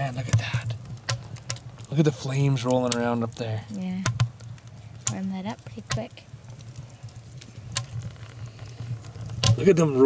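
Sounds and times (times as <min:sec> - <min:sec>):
low steady rumble: 0:00.0 - 0:10.0
wood fire crackling: 0:00.0 - 0:10.0
sharp pop of fire: 0:04.0 - 0:06.1, 0:09.3 - 0:10.0.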